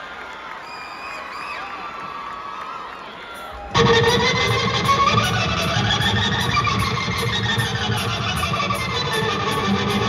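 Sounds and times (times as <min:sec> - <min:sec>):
rock band playing live: 0:03.6 - 0:10.0.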